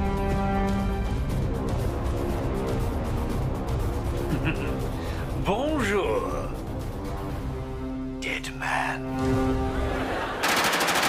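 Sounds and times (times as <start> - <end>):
automatic rifle fire: 10.4 - 11.0.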